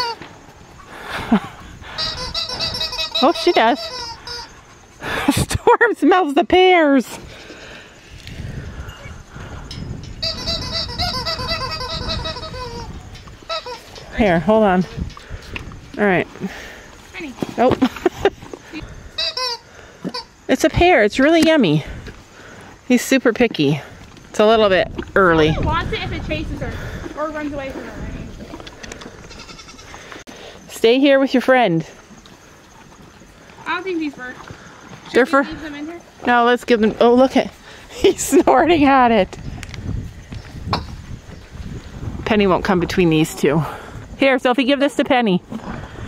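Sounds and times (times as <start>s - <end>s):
repeated pitched calls: 0.8s - 5.0s, 9.0s - 15.4s, 18.7s - 20.8s
horse chewing a pear: 14.9s - 19.3s, 27.0s - 30.2s, 31.9s - 35.2s, 45.5s - 46.0s.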